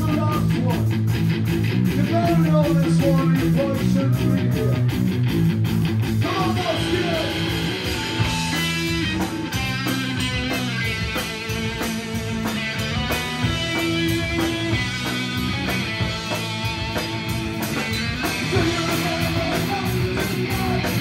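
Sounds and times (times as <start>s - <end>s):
bass guitar: 0.0s - 21.0s
electric guitar chords: 0.0s - 21.0s
fast drum beat: 0.0s - 21.0s.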